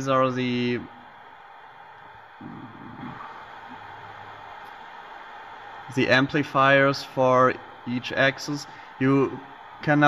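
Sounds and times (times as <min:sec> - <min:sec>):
background hiss: 0:00.0 - 0:10.0
faint low hum: 0:00.0 - 0:10.0
low murmur: 0:00.0 - 0:10.0.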